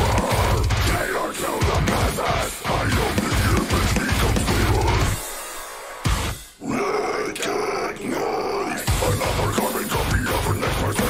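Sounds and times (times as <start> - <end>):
harsh growled vocal: 0.0 - 5.3, 6.6 - 11.0
heavy metal band playing: 0.0 - 11.0.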